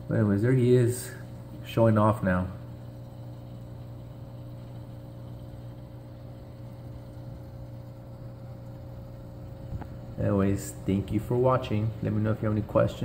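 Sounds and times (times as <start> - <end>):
electric motor hum: 0.0 - 13.0.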